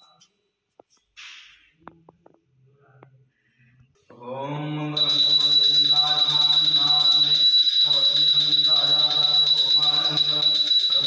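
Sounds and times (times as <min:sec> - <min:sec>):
man chanting: 0:04.0 - 0:11.0
hand bell ringing: 0:05.0 - 0:11.0.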